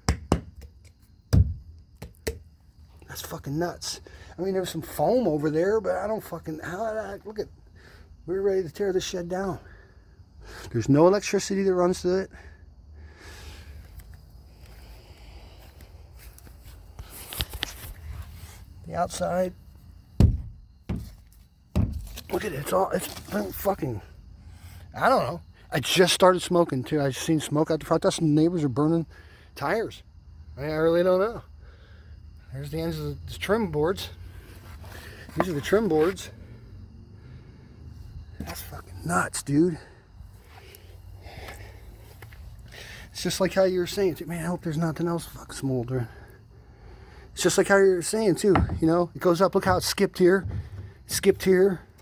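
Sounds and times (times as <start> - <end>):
faint breathing: 9.6 - 10.8, 12.3 - 17.3, 31.5 - 32.4, 36.3 - 38.3, 39.8 - 43.2, 46.0 - 47.4, 50.4 - 51.1.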